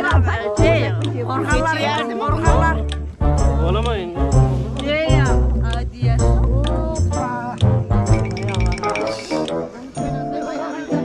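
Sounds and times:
prominent bass line: 0.0 - 9.8
person singing: 8.4 - 11.0.

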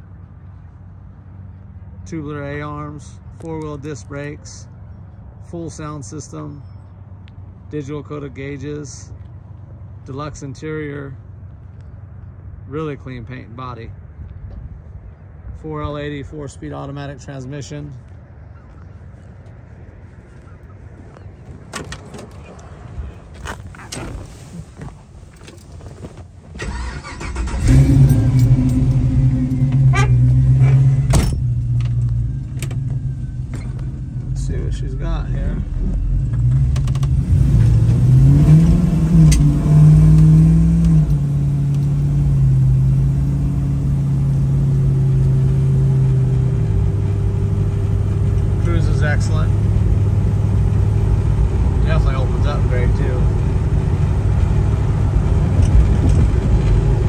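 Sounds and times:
car engine starting and idling: 25.3 - 57.0
engine revving: 26.6 - 33.0, 34.3 - 57.0.

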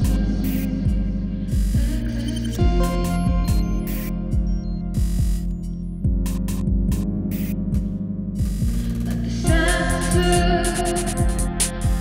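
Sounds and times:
droning synth bass: 0.0 - 12.0
drum machine kick drums: 0.0 - 12.0
hi-hat-like noise: 0.0 - 12.0.

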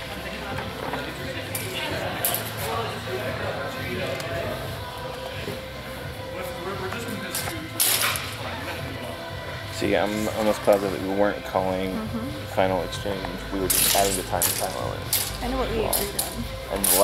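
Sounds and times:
background music: 0.0 - 17.0
voices echoing in hall: 0.0 - 17.0.

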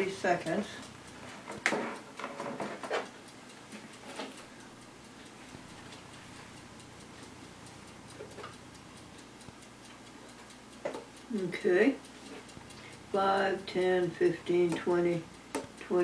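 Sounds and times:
mechanical clock ticking: 0.0 - 16.0.

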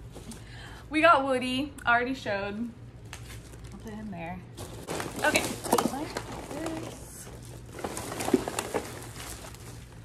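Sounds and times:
plastic bag rustling and crinkling: 3.3 - 10.0.

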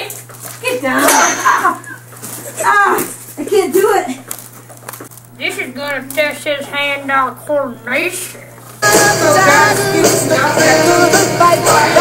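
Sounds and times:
low electrical hum: 0.0 - 11.6.

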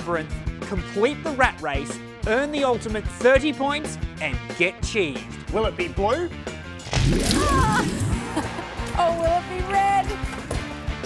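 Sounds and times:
background music: 0.0 - 11.0
wet splash: 6.8 - 8.4.

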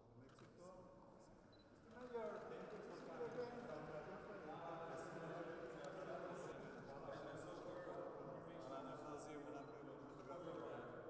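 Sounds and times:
men talking: 1.9 - 10.9.

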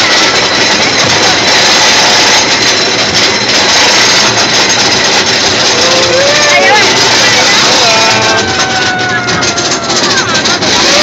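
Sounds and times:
roller coaster lift mechanical noise: 0.0 - 11.0.

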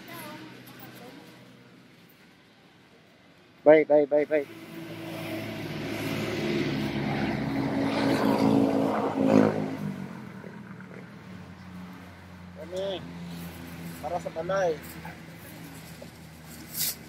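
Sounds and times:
vehicle engine passing: 4.3 - 17.0.

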